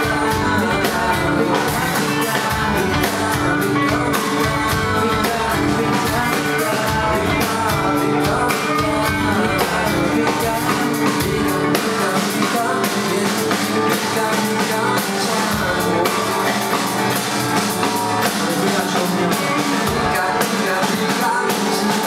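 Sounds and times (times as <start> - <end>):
drum kit beat: 0.0 - 22.0
man singing: 0.0 - 22.0
strummed acoustic guitar: 0.0 - 22.0.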